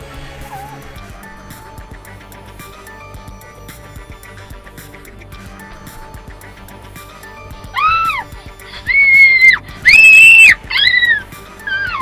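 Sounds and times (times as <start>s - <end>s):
faint background music: 0.0s - 12.0s
person shrieking: 7.7s - 12.0s.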